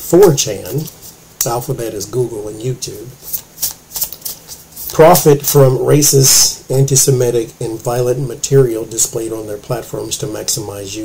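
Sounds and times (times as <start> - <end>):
cards being shuffled: 3.2 - 5.6.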